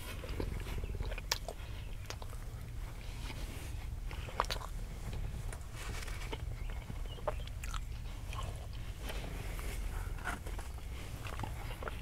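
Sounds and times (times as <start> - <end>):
close-miked chewing: 0.0 - 12.0
low steady rumble: 0.0 - 12.0.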